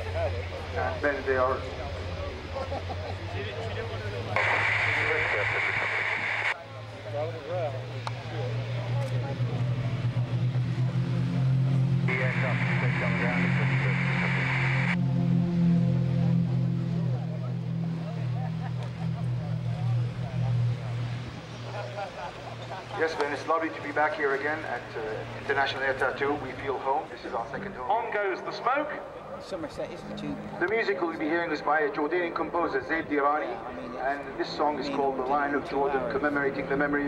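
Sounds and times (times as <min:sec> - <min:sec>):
propeller plane engines droning: 0:00.0 - 0:37.0
bursts of hiss: 0:04.4 - 0:06.6.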